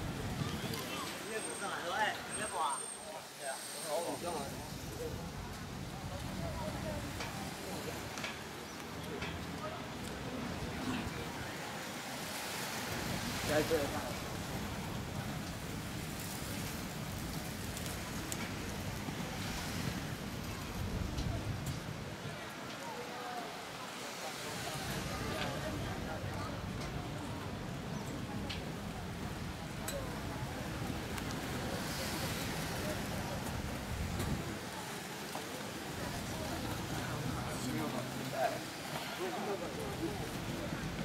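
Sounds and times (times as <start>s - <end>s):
skate wheels rolling on pavement: 12.9s - 41.0s.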